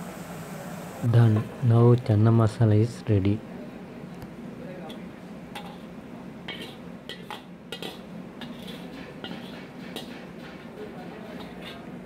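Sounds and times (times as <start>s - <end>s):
metal spatula scraping metal pan: 6.5s - 10.2s.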